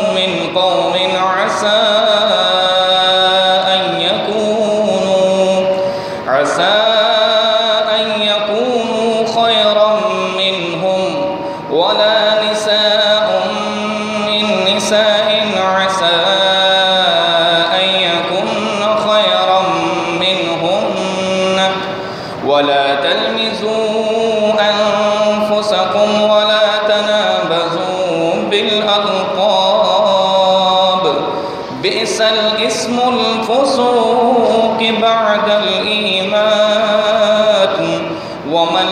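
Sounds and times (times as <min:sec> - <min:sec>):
man chanting melodically: 0:00.0 - 0:38.9
man breathing in: 0:05.7 - 0:06.3, 0:22.0 - 0:22.4, 0:31.4 - 0:31.7, 0:38.1 - 0:38.4.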